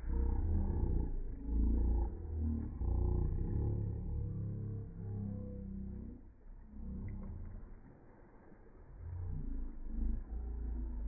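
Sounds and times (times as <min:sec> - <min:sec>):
deep slowed-down growling drones: 0:00.0 - 0:11.0.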